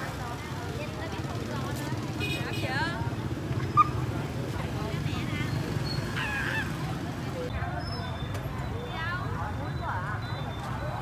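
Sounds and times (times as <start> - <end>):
crowd voices: 0.0 - 11.0
motorbikes riding past: 0.0 - 11.0.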